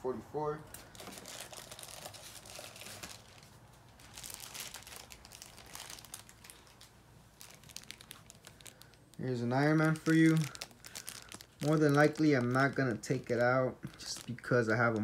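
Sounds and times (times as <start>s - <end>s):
plastic wrapping crinkling: 0.7s - 15.0s.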